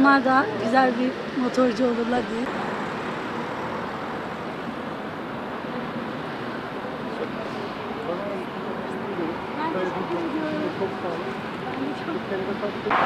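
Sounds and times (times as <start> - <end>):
road traffic noise: 0.0 - 13.0.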